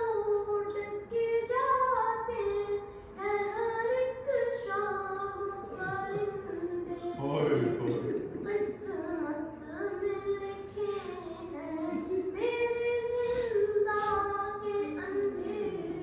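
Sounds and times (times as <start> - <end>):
boy singing unaccompanied lament: 0.0 - 16.0.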